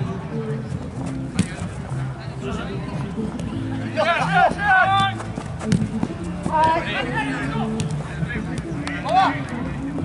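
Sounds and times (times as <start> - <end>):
players shouting: 3.7 - 5.4, 6.4 - 9.7.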